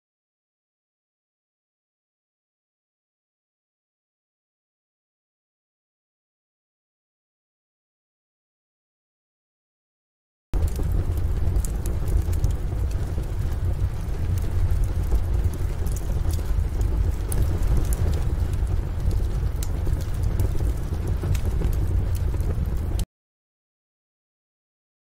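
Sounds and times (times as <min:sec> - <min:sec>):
heavy rain: 0:10.6 - 0:23.0.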